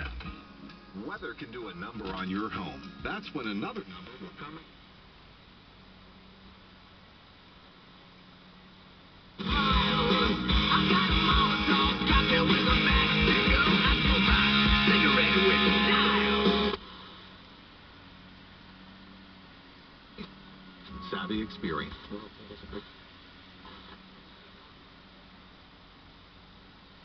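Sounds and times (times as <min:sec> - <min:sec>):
guitar music from car radio: 0:00.0 - 0:04.6, 0:09.4 - 0:17.2, 0:20.2 - 0:22.5
low steady hum: 0:00.0 - 0:27.0.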